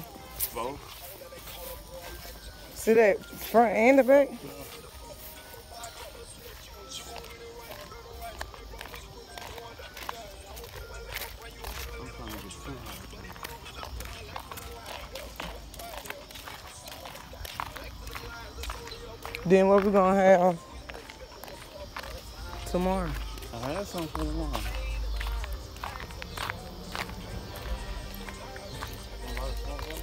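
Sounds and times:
background music: 0:00.0 - 0:30.0
faint indistinct voices: 0:00.0 - 0:30.0.

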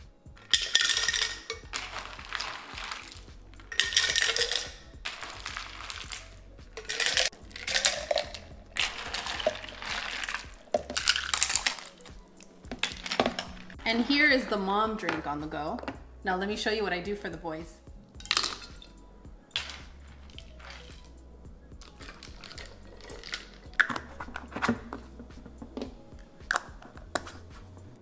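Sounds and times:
ice cubes clinking against glass: 0:00.4 - 0:12.1, 0:12.7 - 0:13.8, 0:18.2 - 0:21.1, 0:21.8 - 0:24.1
drink pouring into jar: 0:00.5 - 0:12.1, 0:19.6 - 0:21.1, 0:21.8 - 0:24.1.

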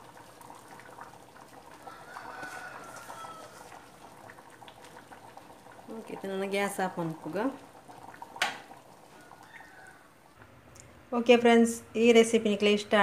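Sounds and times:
chickens calling: 0:01.8 - 0:03.8, 0:09.1 - 0:10.4.

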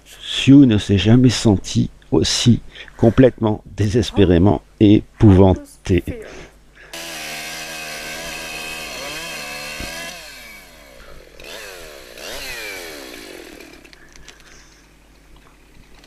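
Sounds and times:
chainsaw cutting tree trunk: 0:06.9 - 0:14.1.

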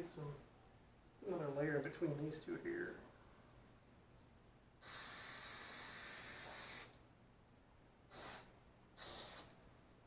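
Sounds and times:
aerosol can spraying hiss: 0:04.8 - 0:07.0, 0:08.1 - 0:09.6.

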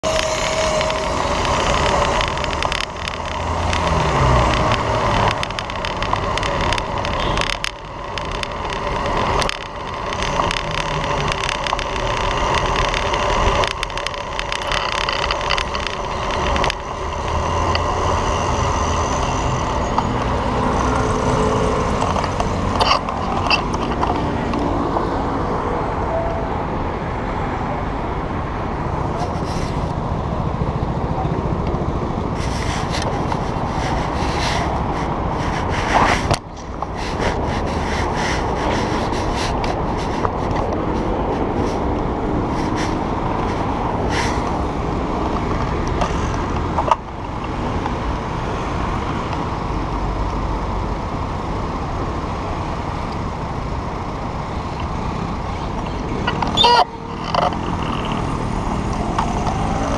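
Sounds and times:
bicycle riding noise: 0:00.0 - 0:25.5, 0:28.4 - 0:59.9
cars passing: 0:00.0 - 0:59.9.

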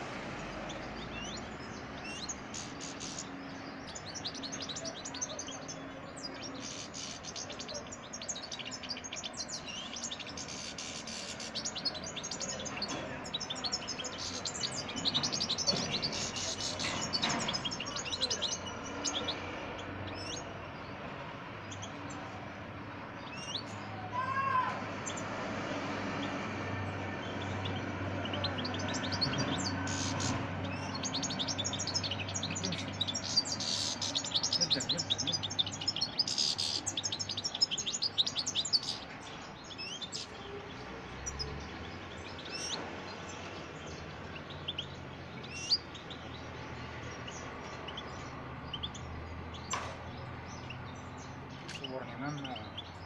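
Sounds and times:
goldfinch twittering: 0:00.7 - 0:20.6, 0:27.4 - 0:49.8.

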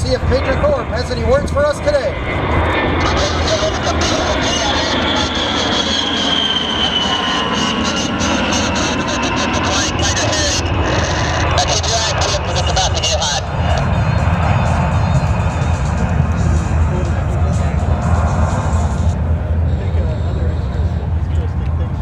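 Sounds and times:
jet engines passing overhead: 0:00.0 - 0:22.0.

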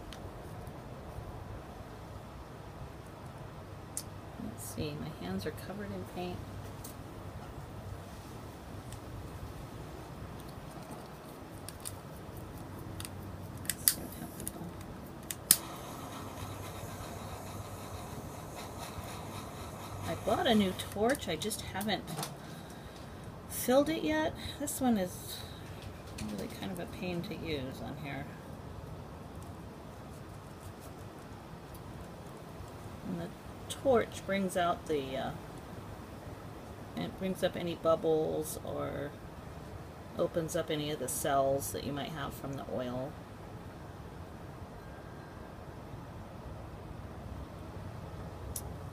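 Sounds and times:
torch igniter clicking: 0:13.0 - 0:21.2
flame hissing: 0:13.7 - 0:21.4.

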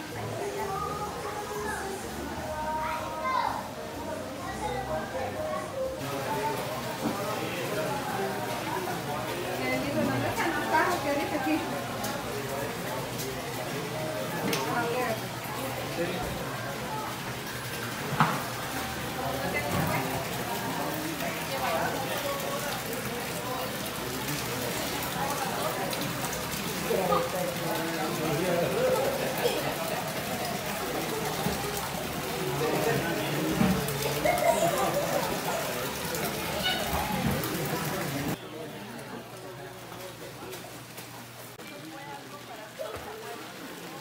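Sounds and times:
music: 0:02.0 - 0:06.0.

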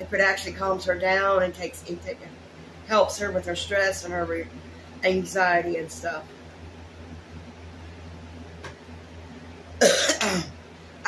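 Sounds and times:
woman clearing her throat: 0:09.8 - 0:10.6.

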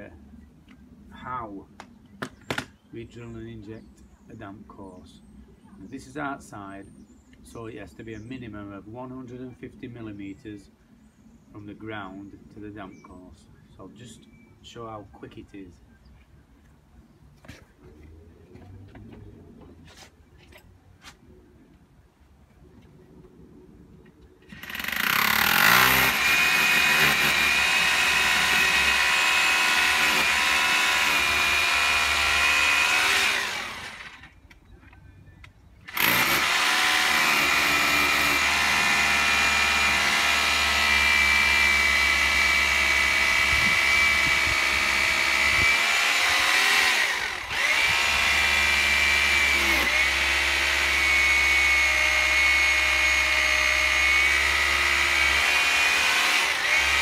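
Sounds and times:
power drill boring into mortar: 0:24.5 - 0:34.3, 0:35.9 - 0:57.0.

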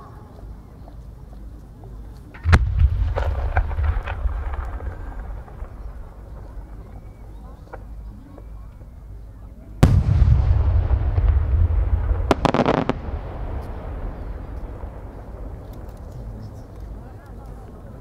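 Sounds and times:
rattle of firework pops: 0:02.4 - 0:07.0, 0:09.8 - 0:17.6
firework boom and rumble: 0:02.4 - 0:07.8, 0:09.8 - 0:17.2.

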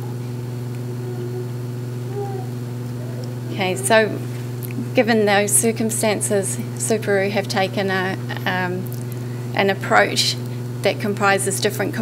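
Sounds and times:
low electrical mains hum: 0:00.0 - 0:12.0.

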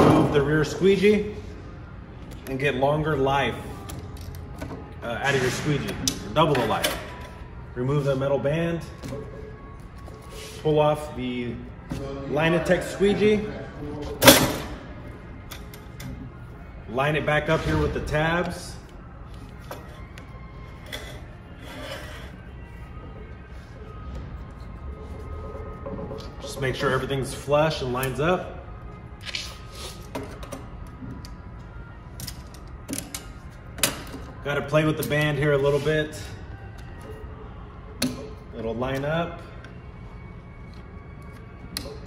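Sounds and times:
quiet background music: 0:00.0 - 0:42.0
soft rubbing and handling noises: 0:08.9 - 0:14.2.

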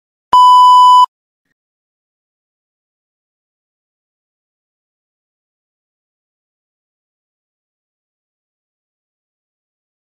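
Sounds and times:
loud electronic beep: 0:00.4 - 0:01.1.

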